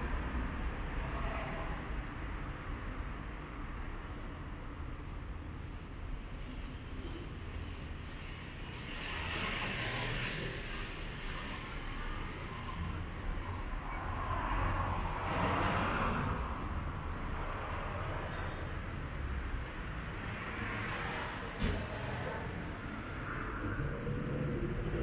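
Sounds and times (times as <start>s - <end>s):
traffic rumble: 0.0s - 25.0s.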